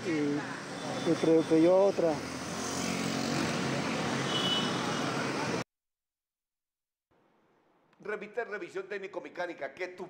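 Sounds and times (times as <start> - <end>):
street traffic: 0.0 - 5.6.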